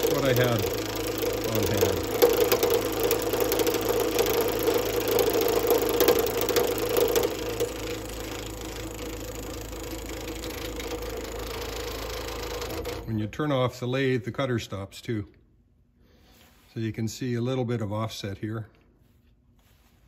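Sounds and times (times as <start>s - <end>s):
cutter ticking into wood: 0.0s - 13.1s
wood lathe motor hum: 0.0s - 13.5s.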